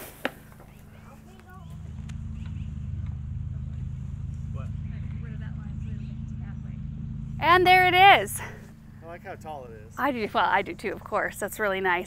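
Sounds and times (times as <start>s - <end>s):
low engine drone: 0.5s - 12.0s.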